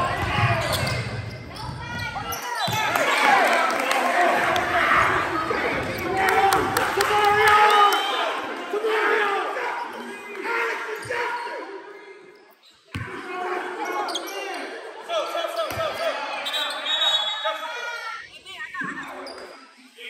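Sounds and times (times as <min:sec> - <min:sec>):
chatter of people in hall: 0:00.0 - 0:20.0.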